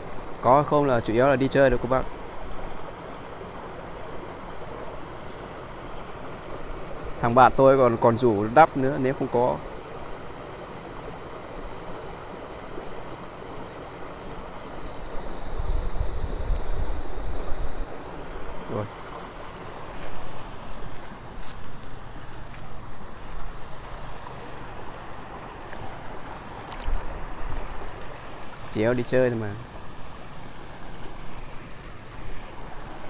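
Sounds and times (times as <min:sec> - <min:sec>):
stream water running: 0:00.0 - 0:33.0
wind rumbling on microphone: 0:15.0 - 0:18.6.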